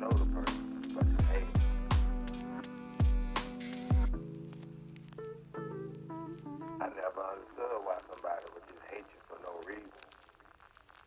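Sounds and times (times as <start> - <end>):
person talking: 0.0 - 1.6, 6.7 - 10.1.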